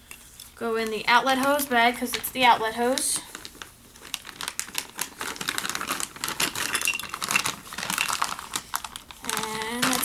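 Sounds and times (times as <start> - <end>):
plastic bag crinkling: 0.6 - 10.0.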